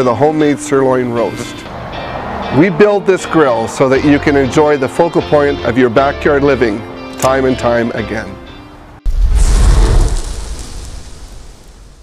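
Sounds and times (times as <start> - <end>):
flame burst rushing: 9.1 - 12.0.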